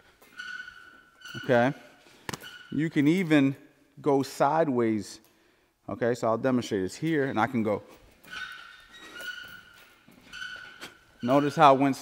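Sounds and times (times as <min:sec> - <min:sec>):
high steady squeaks: 0:00.1 - 0:03.3, 0:07.1 - 0:12.0.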